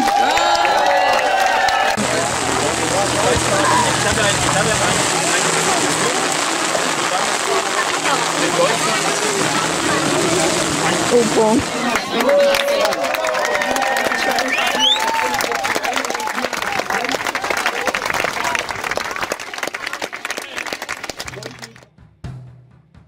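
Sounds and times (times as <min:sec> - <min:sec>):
crowd talking: 0:00.0 - 0:21.8
steady rain: 0:00.8 - 0:21.8
man speaking over microphone: 0:02.0 - 0:11.4.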